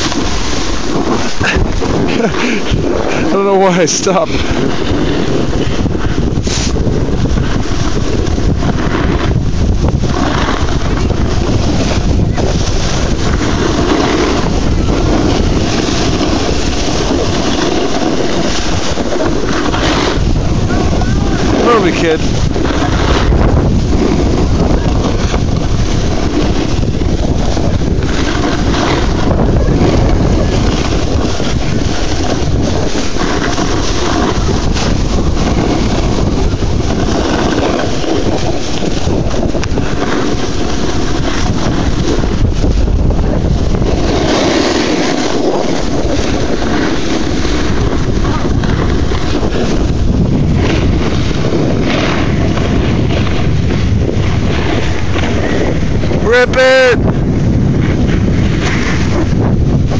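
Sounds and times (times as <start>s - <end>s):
skis hissing over packed snow: 0.0s - 59.9s
wind buffeting microphone: 0.0s - 59.9s.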